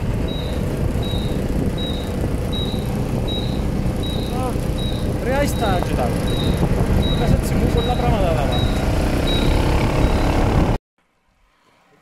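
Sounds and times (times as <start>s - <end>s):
wind rushing over microphone: 0.0s - 10.8s
short high beeps: 0.3s - 10.4s.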